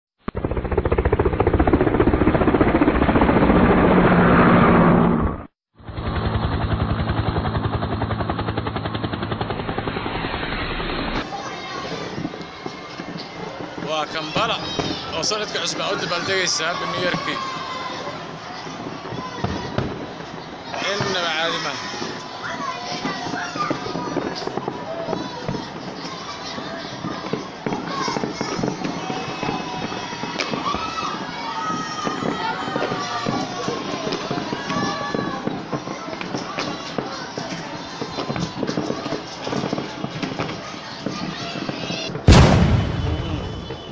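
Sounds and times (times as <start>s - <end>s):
fireworks crackling bangs: 0.2s - 5.5s, 9.0s - 43.9s.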